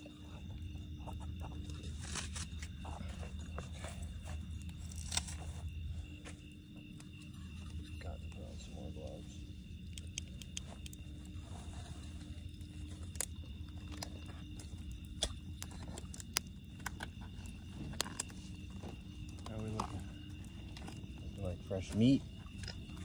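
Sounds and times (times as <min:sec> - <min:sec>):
campfire crackling and popping: 0:04.5 - 0:23.0.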